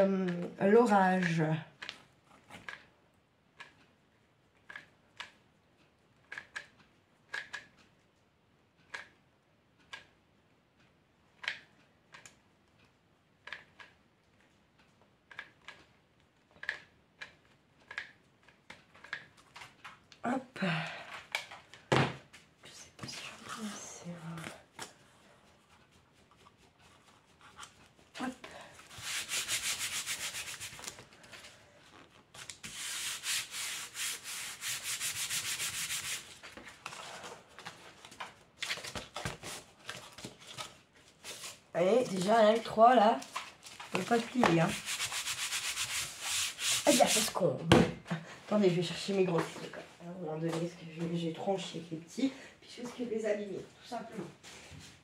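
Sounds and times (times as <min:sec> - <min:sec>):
hand rubbing over cardboard: 0:44.0 - 0:47.4.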